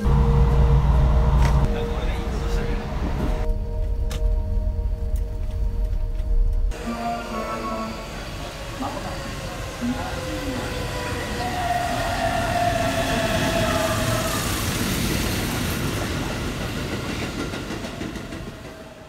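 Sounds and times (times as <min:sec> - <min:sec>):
sustained whine: 0:00.0 - 0:08.7.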